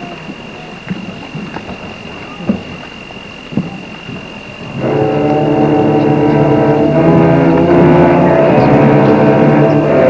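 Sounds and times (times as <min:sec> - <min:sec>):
concert band sustained chord: 0:00.0 - 0:10.0.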